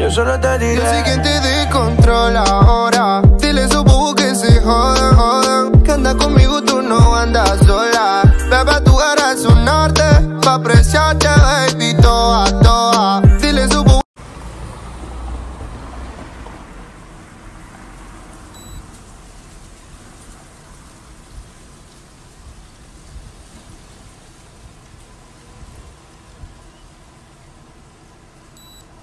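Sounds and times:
hiss with low rumble: 18.8s - 28.6s.

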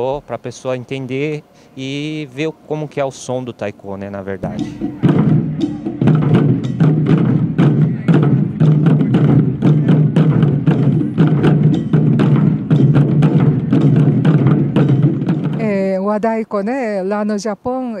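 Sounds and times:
drum ensemble playing: 4.0s - 16.8s.

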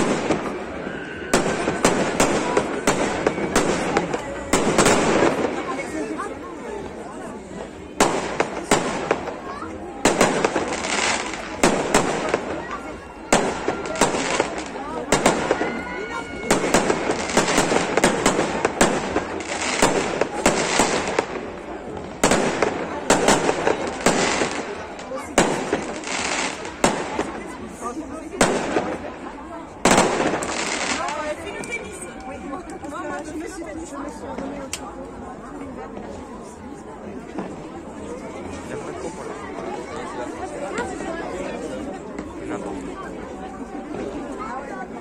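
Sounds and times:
fireworks bursting with crackle: 0.0s - 7.0s, 7.9s - 33.3s
crowd murmuring: 0.0s - 45.0s.

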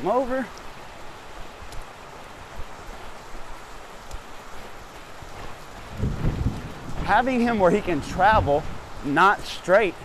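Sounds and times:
wind noise on microphone: 4.3s - 9.1s
soft low thumps: 4.9s - 9.1s.

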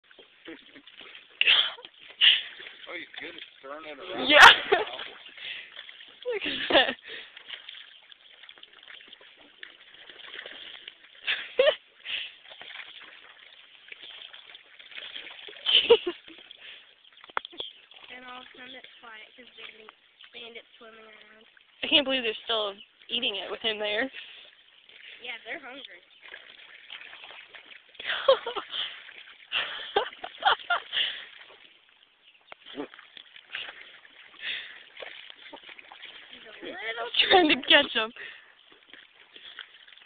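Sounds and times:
water sloshing from dog swimming: 0.0s - 40.0s
person laughing: 15.7s - 16.4s, 28.0s - 28.8s.

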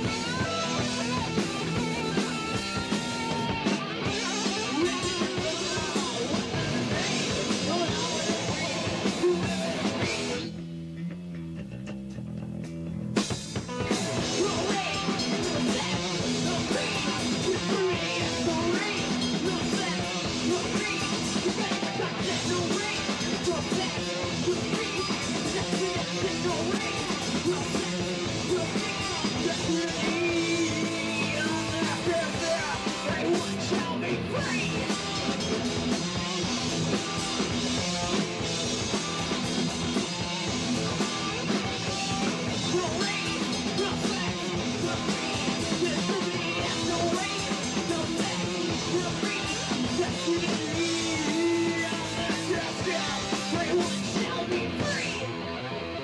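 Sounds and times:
distorted electric guitars: 0.0s - 56.0s
drum kit: 0.0s - 56.0s
punk rock band playing live: 0.0s - 56.0s.

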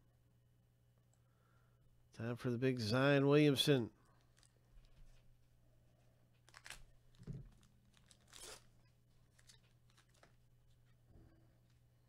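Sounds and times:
foil pack tearing and crinkling: 6.4s - 10.4s.

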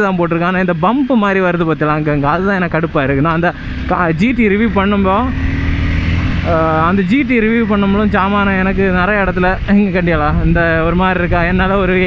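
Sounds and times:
people talking: 0.0s - 5.4s, 6.5s - 12.0s
motorcycle engine droning: 0.0s - 12.0s.

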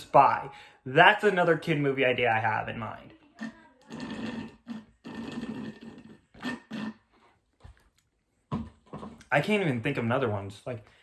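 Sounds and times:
slurping through a straw: 3.4s - 7.4s.

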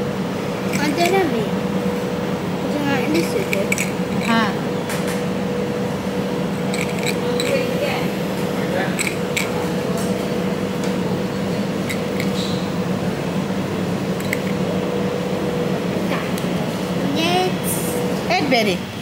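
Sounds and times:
electrical machine hum: 0.0s - 19.0s
murmur of background voices: 0.7s - 5.4s, 6.0s - 14.1s.

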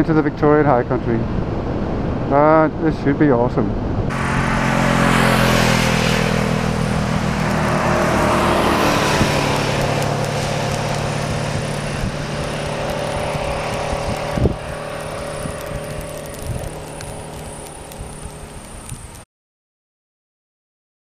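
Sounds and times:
distant motorcycle engines: 3.2s - 19.2s
motorcycle passing by: 4.1s - 19.2s.

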